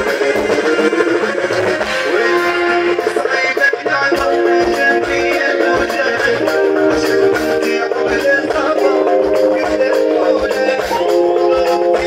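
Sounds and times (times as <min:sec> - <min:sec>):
electric guitar: 0:00.0 - 0:12.0
live band music: 0:00.0 - 0:12.0.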